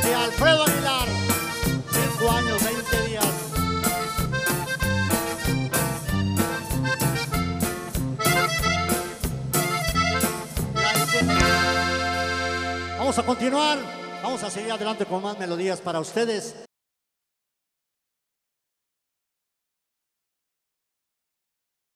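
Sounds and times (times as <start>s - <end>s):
button accordion: 0.0s - 15.4s
band playing: 0.0s - 16.3s.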